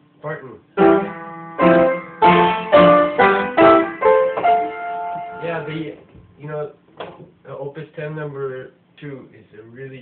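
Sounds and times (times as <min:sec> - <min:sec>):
piano chords ringing: 0:00.8 - 0:06.0.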